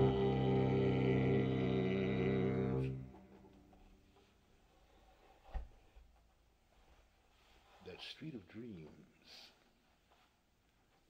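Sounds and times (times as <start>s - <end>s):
double bass: 0.0s - 3.2s
man singing low note: 0.0s - 3.5s.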